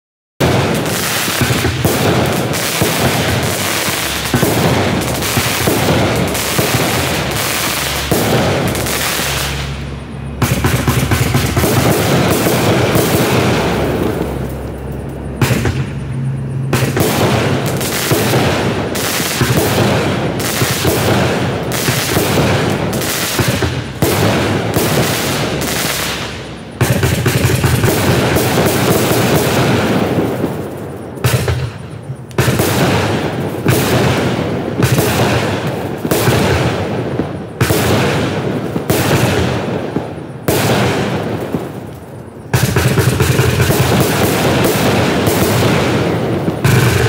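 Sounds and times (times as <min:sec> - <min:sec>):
fireworks cake firing: 0:00.4 - 0:14.6, 0:16.7 - 0:47.0.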